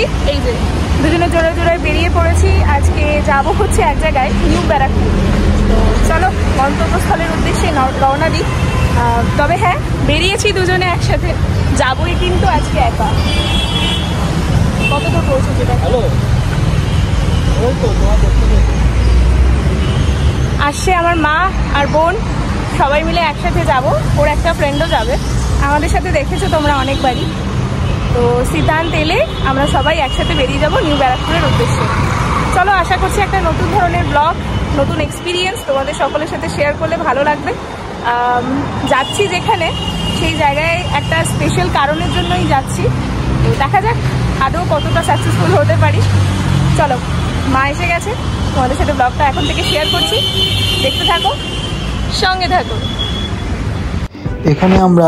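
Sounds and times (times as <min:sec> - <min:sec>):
woman talking: 0:00.0 - 0:13.2, 0:20.6 - 0:27.3, 0:28.2 - 0:46.1, 0:46.7 - 0:51.4, 0:52.1 - 0:52.8
busy road traffic roar: 0:00.0 - 0:55.0
heavy vehicle rumbling past: 0:00.6 - 0:10.1.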